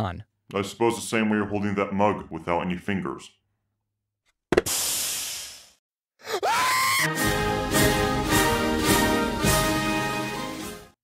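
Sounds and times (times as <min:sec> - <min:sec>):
theme music: 0:07.0 - 0:11.0.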